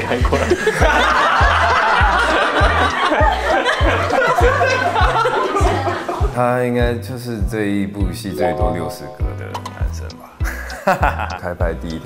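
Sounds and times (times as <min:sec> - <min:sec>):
people laughing: 0:00.0 - 0:06.4, 0:10.4 - 0:11.5.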